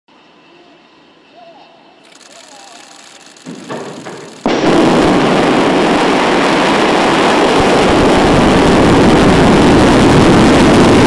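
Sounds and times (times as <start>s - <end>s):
distant voice calling out: 0.5s - 3.2s.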